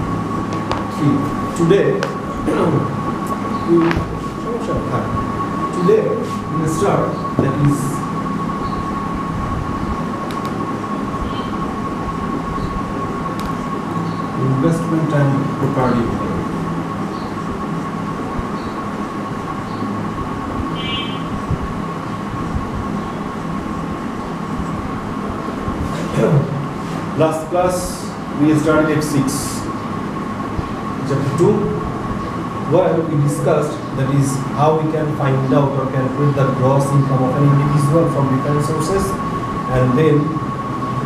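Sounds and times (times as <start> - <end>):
constant high whine: 0.0 - 41.0
droning background noise: 0.0 - 41.0.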